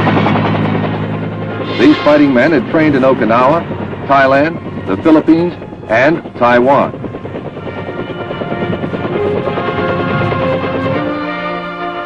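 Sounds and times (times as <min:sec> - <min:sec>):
helicopter rotor and engine: 0:00.0 - 0:12.0
orchestral music: 0:00.6 - 0:12.0.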